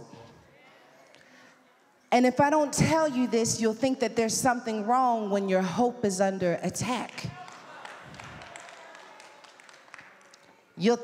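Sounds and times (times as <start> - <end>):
scattered claps: 7.1 - 10.6.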